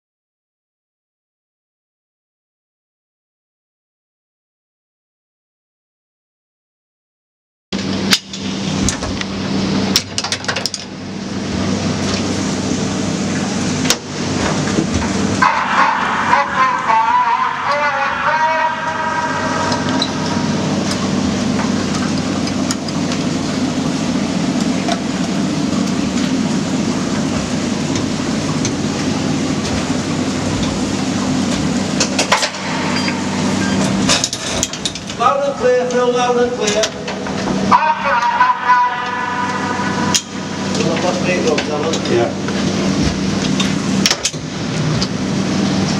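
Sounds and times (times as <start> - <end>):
constant low hum: 7.8 - 45.9
mine cage rushing rumble: 26.0 - 35.3
wavering squeal: 32.8 - 34.0.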